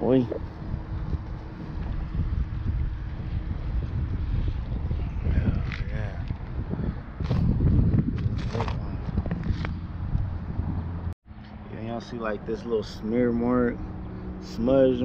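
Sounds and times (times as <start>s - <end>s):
wind rumbling on microphone: 0.0s - 11.2s.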